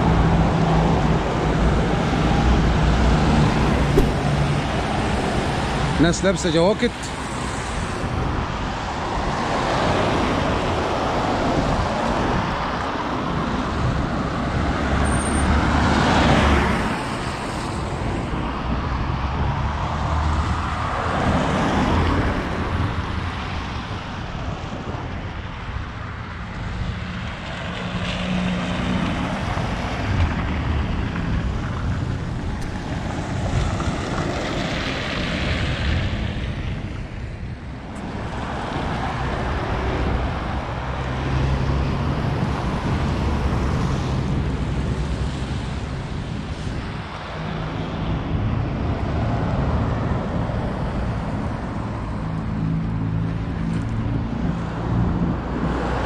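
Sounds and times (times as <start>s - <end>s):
cars passing on wet road: 0.0s - 56.0s
low traffic rumble: 0.0s - 56.0s.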